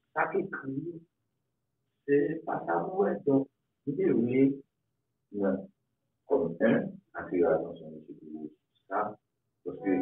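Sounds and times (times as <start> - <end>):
man speaking: 0.0 - 1.1, 2.0 - 4.7, 5.3 - 5.7, 6.3 - 10.0.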